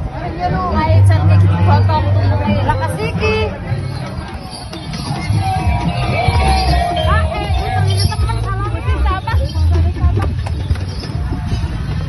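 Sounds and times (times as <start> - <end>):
babble of voices: 0.0 - 12.0
loud music with heavy bass beat: 3.8 - 10.2.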